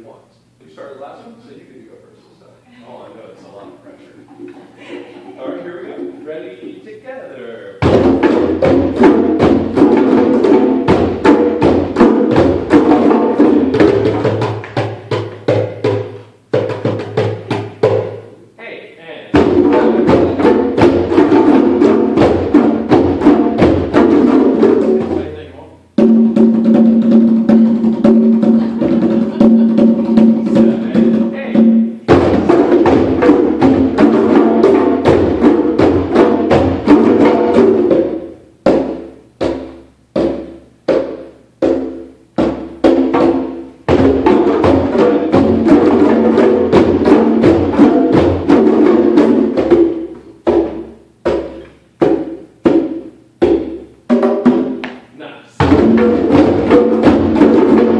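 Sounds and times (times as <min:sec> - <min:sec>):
hand drums playing: 0:07.8 - 0:18.4, 0:19.3 - 0:57.9.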